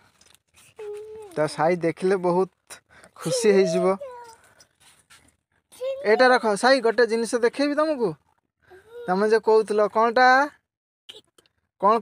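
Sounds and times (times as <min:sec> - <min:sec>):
child calling out: 0:03.2 - 0:04.4.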